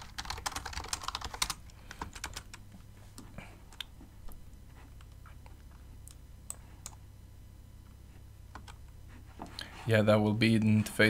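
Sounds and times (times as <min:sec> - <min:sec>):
typing on computer keyboard: 0:00.0 - 0:02.6.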